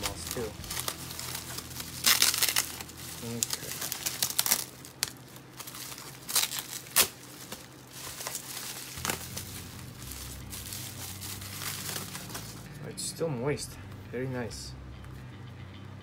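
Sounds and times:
bubble wrap snap: 0.0 - 9.5
bubble wrap and paper crinkling: 0.0 - 12.9.

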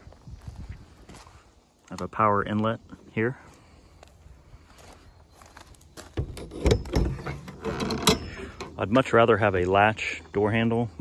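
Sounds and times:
metal latch clanking and rattling: 6.2 - 8.8.

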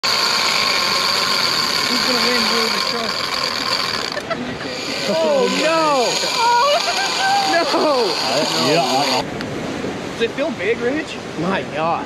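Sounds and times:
fishing reel drag buzzing: 0.0 - 9.3
low voices murmuring: 0.1 - 9.3.

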